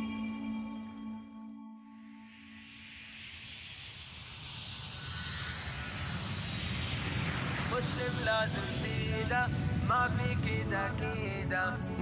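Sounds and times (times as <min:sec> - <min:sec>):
high whine: 0:00.0 - 0:12.0
jet engines running up: 0:03.1 - 0:12.0
low rumble: 0:04.3 - 0:12.0.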